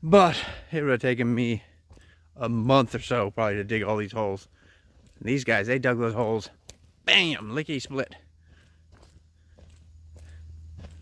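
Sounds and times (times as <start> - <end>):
footsteps on dirt and leaves: 1.1 - 11.0.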